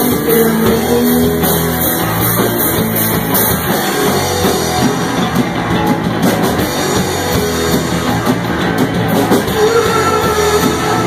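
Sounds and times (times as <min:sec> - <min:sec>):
drum kit: 0:00.0 - 0:11.0
electric guitar: 0:00.0 - 0:11.0
live rock band playing: 0:00.0 - 0:11.0.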